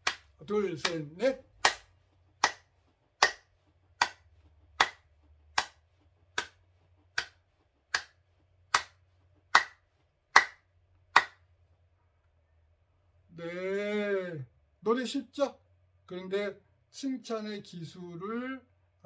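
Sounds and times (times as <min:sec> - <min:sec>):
hand claps: 0:00.0 - 0:11.5.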